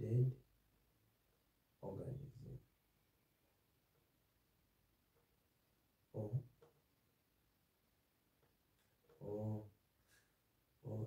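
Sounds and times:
man making hesitation sounds: 6.2s - 6.5s, 9.2s - 9.8s.

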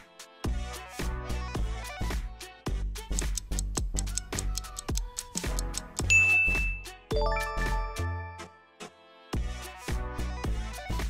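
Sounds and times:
background music with beat: 0.0s - 11.0s
bright timer ding: 6.1s - 8.2s.

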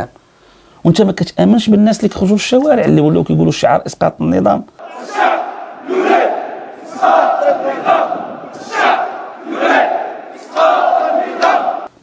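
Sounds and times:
protest crowd chanting: 4.8s - 11.9s.

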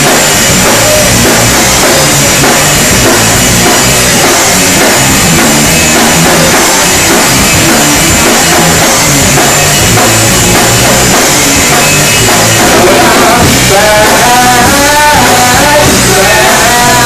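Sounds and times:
drum kit and cymbals: 0.0s - 17.0s
electric guitars: 0.0s - 17.0s
live rock band playing: 0.0s - 17.0s.

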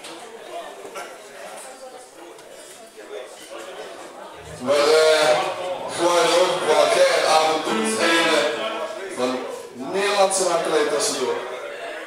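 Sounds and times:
man singing: 4.5s - 8.6s.

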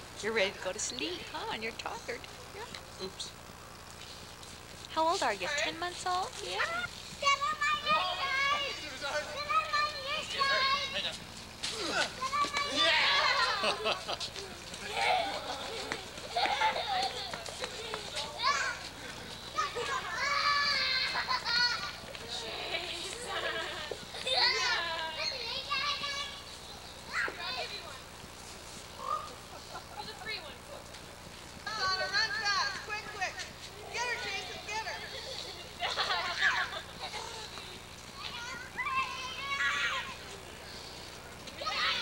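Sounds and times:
voices calling out: 0.0s - 42.0s
children shouting while playing: 6.5s - 28.1s, 29.0s - 29.5s, 33.9s - 40.6s, 41.5s - 42.0s.

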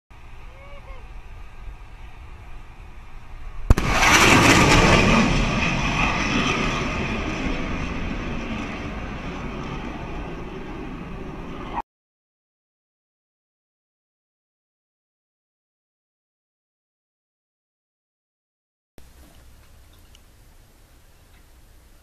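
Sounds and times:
jet engine roar: 0.2s - 11.8s
catapult sharp crack: 3.7s - 5.7s.

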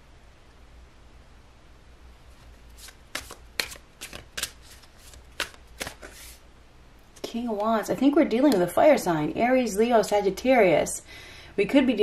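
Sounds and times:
cards being shuffled: 2.3s - 6.4s.

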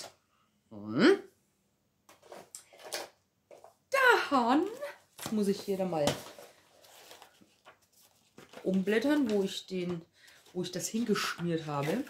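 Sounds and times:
person speaking: 3.9s - 6.4s, 8.6s - 12.0s
paper rustling: 4.6s - 12.0s.

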